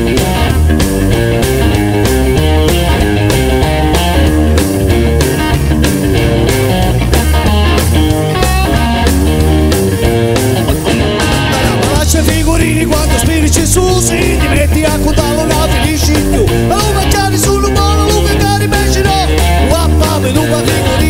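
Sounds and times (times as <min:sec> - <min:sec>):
instrumental rock music: 0:00.0 - 0:21.0.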